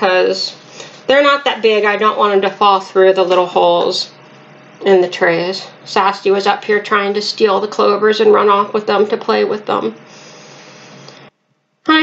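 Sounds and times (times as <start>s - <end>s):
voice: 0.0s - 10.1s
faint room hiss: 0.0s - 12.0s.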